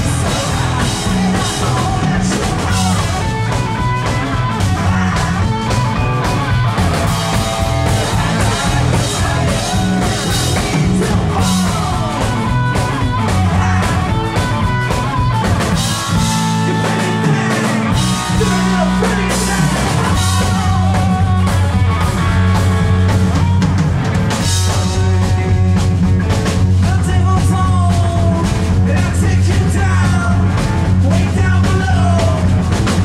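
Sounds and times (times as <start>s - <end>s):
man singing: 0.0s - 5.9s, 7.3s - 15.0s, 16.1s - 21.8s, 24.4s - 25.9s, 26.8s - 33.0s
blues-rock band playing: 0.0s - 33.0s.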